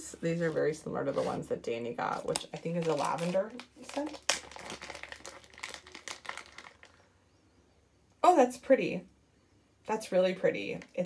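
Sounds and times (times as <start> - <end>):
plastic bag crinkling: 2.1 - 7.1.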